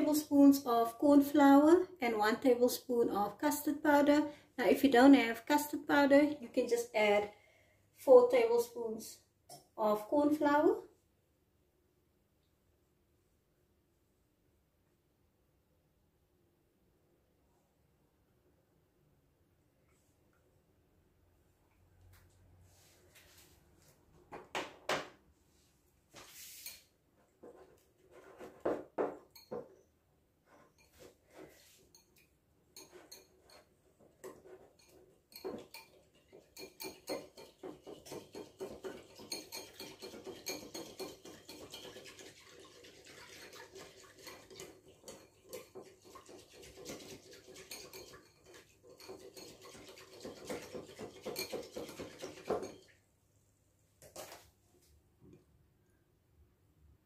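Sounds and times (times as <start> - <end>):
whisk clicking against bowl: 34.2 - 52.8.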